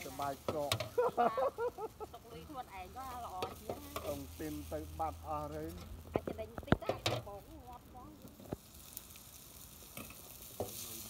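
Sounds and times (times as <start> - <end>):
voices talking: 0.0 - 8.4
noodles sizzling in a pan: 0.0 - 11.0
stirring in a pan: 0.0 - 11.0.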